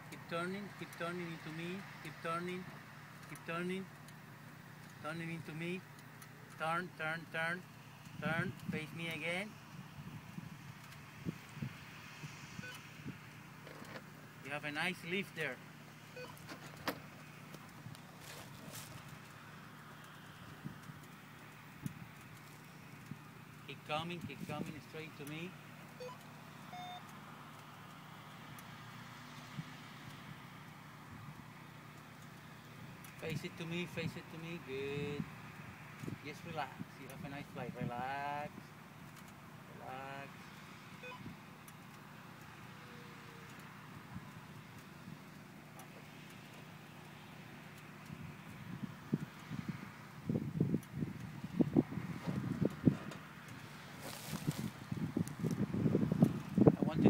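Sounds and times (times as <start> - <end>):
engine humming: 0.0 - 37.2, 37.9 - 57.0
wind buffeting microphone: 48.6 - 53.1, 54.2 - 57.0.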